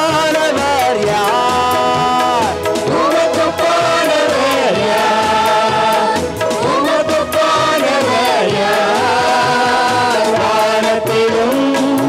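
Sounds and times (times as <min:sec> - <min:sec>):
amplified backing music: 0:00.0 - 0:12.0
women singing praise song: 0:01.9 - 0:12.0.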